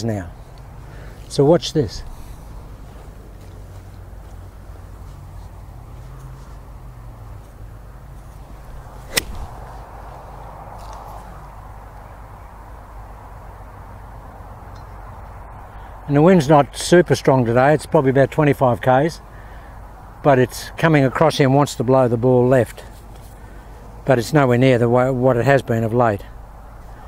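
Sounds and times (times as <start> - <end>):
golf club striking ball: 8.6 - 9.9.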